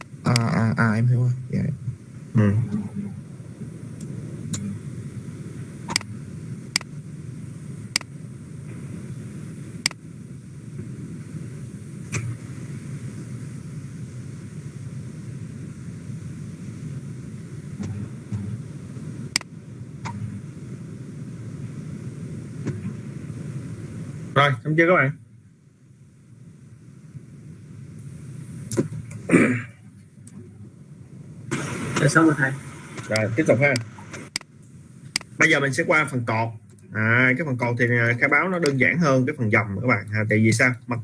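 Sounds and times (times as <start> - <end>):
low background hum: 0.0 - 41.0
computer mouse clicks: 5.9 - 6.1.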